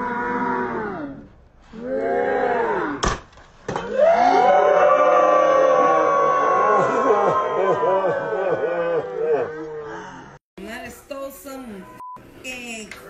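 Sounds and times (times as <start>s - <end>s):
sharp crack: 3.0s - 3.9s.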